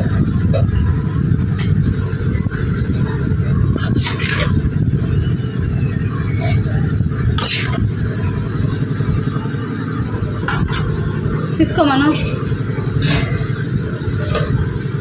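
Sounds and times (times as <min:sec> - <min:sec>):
steady low rumble: 0:00.0 - 0:15.0
metal spatula scraping a pan: 0:03.8 - 0:04.6.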